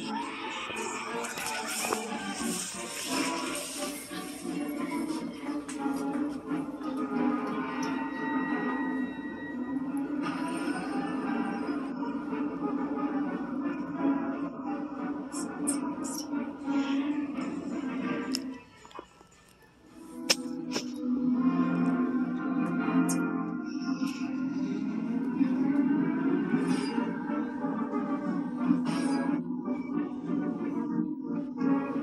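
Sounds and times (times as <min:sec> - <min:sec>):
spooky music from speaker: 0:00.0 - 0:32.0.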